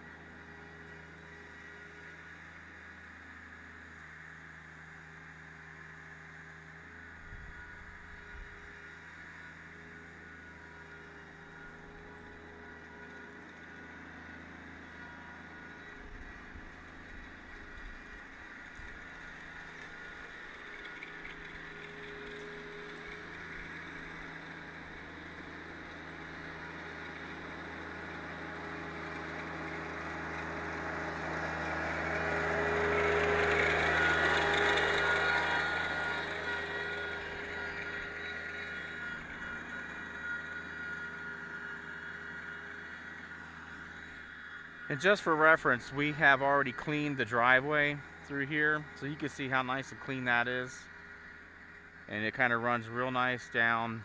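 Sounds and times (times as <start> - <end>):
tractor diesel engine: 0.0 - 54.0.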